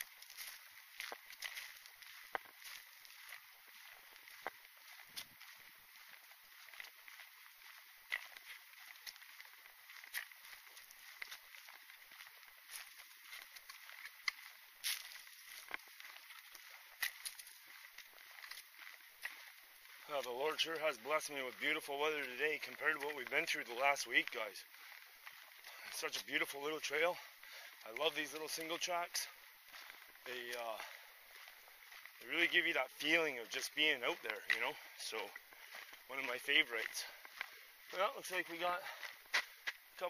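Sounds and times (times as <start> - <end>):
footsteps on dry leaves: 0.0 - 40.0.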